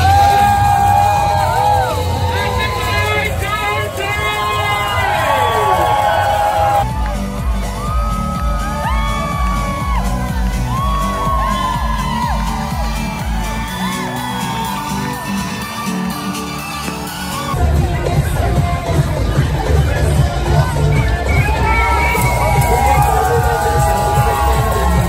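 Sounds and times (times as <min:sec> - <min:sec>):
crowd cheering and whooping: 0:00.0 - 0:25.0
dance music with heavy bass beat: 0:00.0 - 0:25.0.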